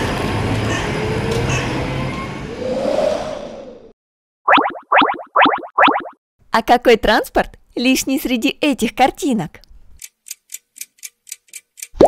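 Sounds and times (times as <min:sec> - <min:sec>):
road noise: 0:00.0 - 0:03.9.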